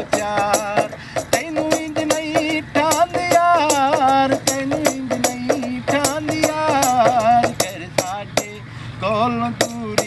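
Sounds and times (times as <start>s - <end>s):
frame drum beat: 0.0s - 8.6s.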